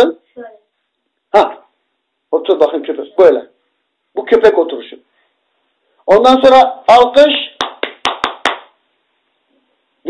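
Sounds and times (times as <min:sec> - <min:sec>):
hand claps: 0:07.6 - 0:08.8.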